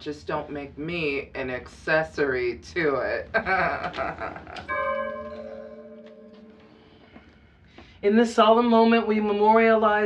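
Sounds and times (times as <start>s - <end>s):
bell ringing: 4.7s - 7.2s.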